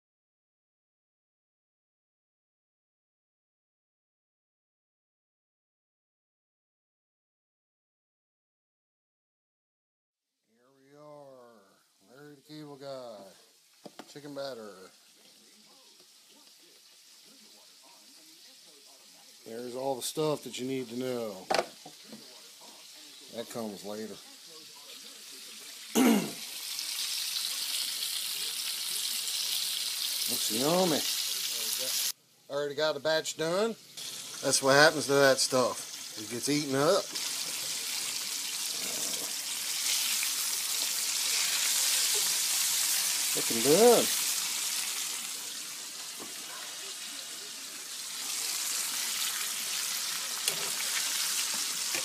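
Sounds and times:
faint distant voices: 10.5 - 32.5, 34.0 - 52.0
chicken frying in hot oil: 11.9 - 32.2, 33.2 - 52.0.

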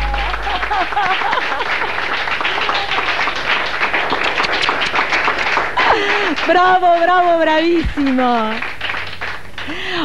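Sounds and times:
many hands clapping: 0.0 - 10.0.

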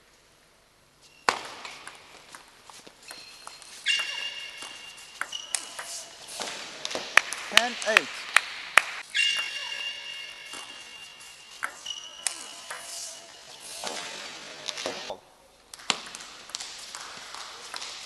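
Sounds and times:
shoe squeaks on floor: 1.0 - 6.7, 9.0 - 15.1
table tennis ball hits: 1.2 - 2.5, 3.1 - 13.0, 15.8 - 18.0.

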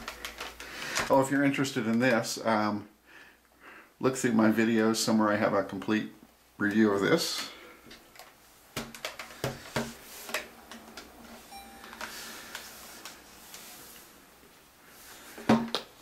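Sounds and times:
brief faint tone: 11.5 - 12.1.

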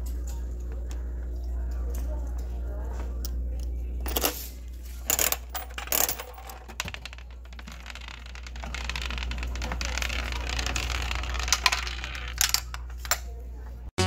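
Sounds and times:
coin mechanism clicks: 5.1 - 7.2
gumball rolling down spiral track: 6.8 - 12.6.

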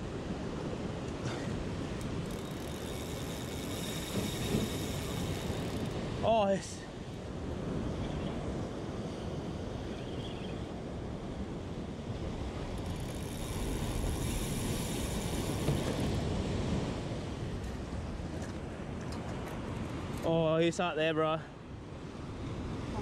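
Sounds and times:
wind buffeting microphone: 1.6 - 6.2.

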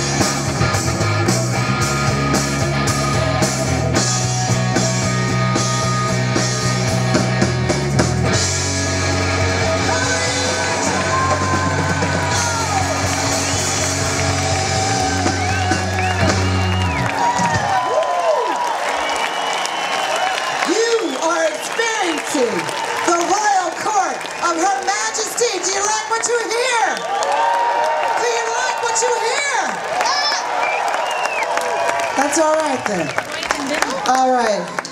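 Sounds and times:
blues-rock band playing: 0.0 - 17.9
voices whooping: 9.7 - 23.5, 26.6 - 34.2.

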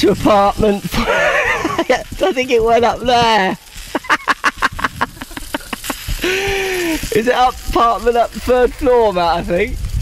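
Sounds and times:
lawn sprinkler ticking rapidly: 0.0 - 10.0.

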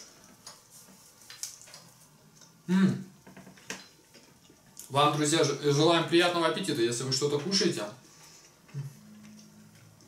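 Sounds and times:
soft chewing and biting: 0.2 - 2.7, 4.0 - 5.0.

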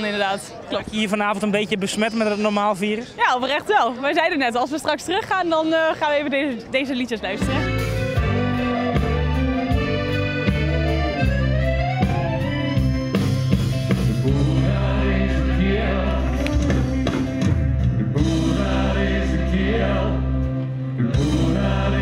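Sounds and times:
accordion playing: 7.3 - 22.0
band and orchestra backing: 7.4 - 22.0
steady bass line: 7.4 - 22.0
singing voices: 14.2 - 22.0.

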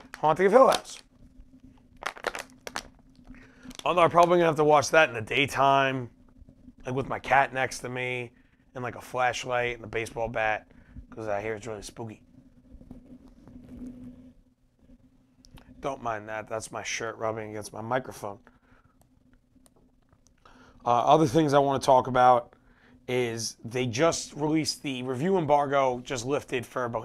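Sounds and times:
plastic bottle crinkling: 0.0 - 1.1, 1.8 - 4.4
sharp crackles: 0.0 - 5.0
steady low hum: 0.0 - 27.0
fabric rustling on microphone: 12.2 - 15.0.

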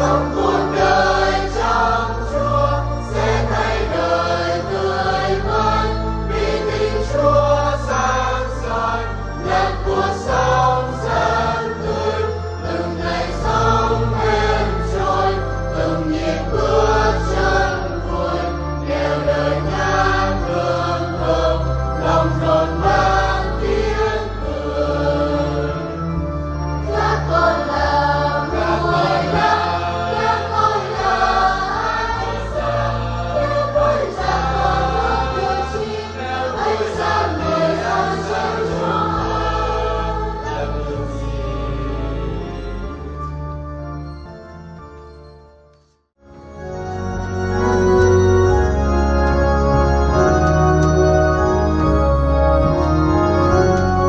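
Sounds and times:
church choir singing a hymn: 0.0 - 44.3
instrumental accompaniment: 0.0 - 54.0.

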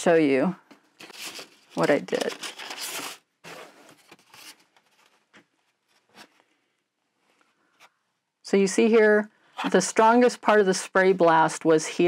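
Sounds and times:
paper and plastic sheets rustling: 1.0 - 6.4.

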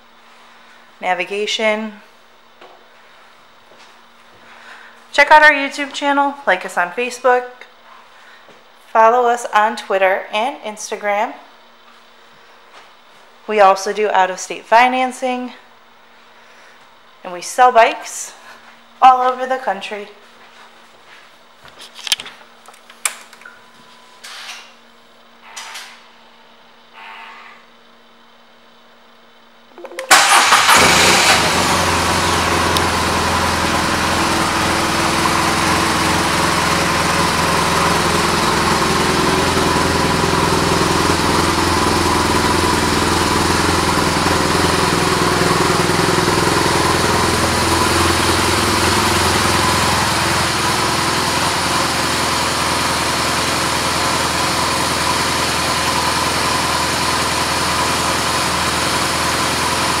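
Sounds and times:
motorcycle engine starting: 29.8 - 60.0
motorcycle engine idling: 30.3 - 60.0.

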